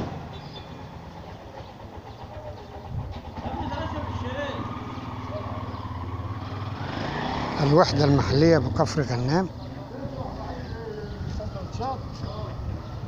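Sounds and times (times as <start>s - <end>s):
street noise: 0.0s - 13.0s
vehicle engine droning: 0.0s - 13.0s
voices: 0.7s - 13.0s.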